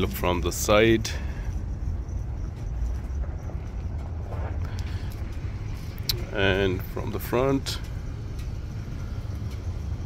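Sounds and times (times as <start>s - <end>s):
wind rumbling on microphone: 0.0s - 7.1s.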